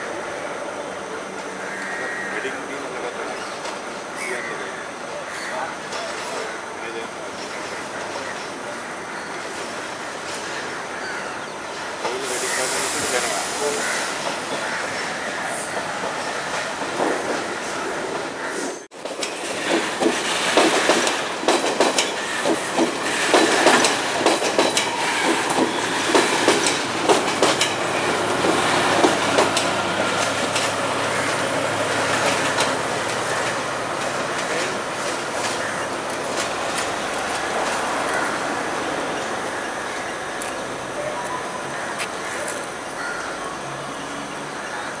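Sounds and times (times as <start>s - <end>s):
diesel train running: 0.0s - 45.0s
wheels clacking over rail joints: 5.8s - 42.9s.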